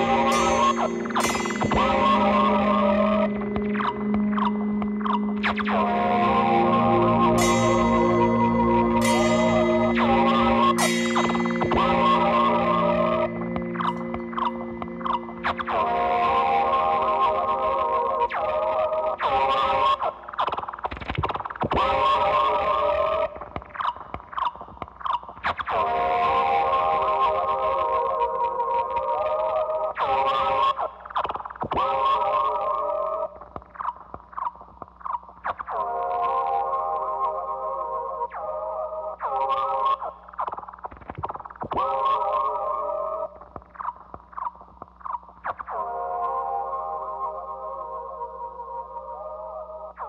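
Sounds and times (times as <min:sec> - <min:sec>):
electric guitar drone: 0:00.0 - 0:17.6.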